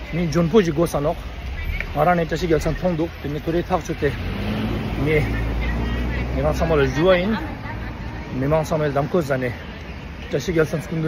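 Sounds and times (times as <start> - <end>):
vehicle engine rumbling: 0.0 - 11.0.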